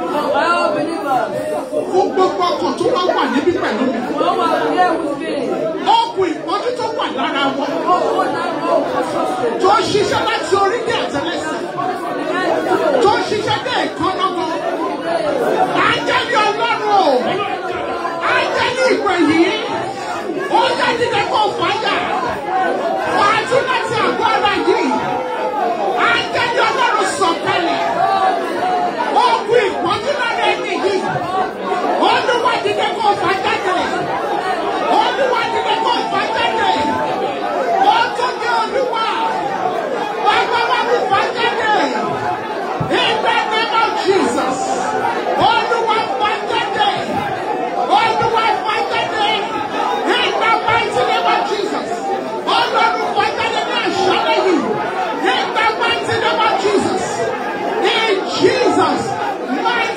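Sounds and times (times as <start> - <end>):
women praying into microphones: 0.0 - 14.8, 15.4 - 25.2, 40.2 - 59.9
babble of people praying: 0.0 - 59.9.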